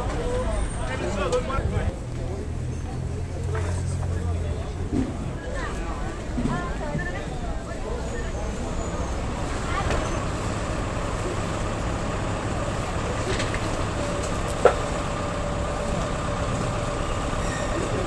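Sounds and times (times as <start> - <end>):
low rumble of traffic: 0.0 - 18.0.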